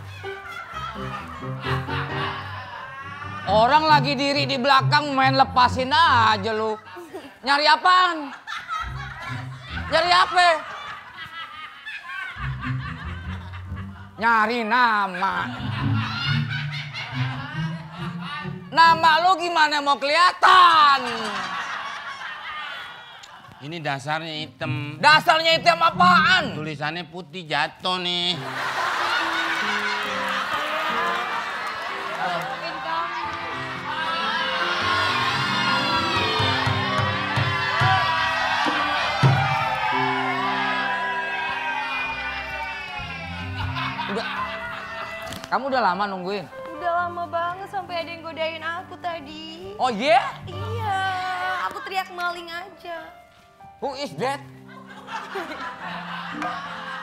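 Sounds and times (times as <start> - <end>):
laughter: 0.0 - 3.8, 6.6 - 14.2, 15.1 - 19.1, 20.9 - 23.8, 28.4 - 38.2, 42.6 - 45.5, 54.6 - 57.0
audience shouting and cheering: 0.0 - 4.2, 28.4 - 45.4.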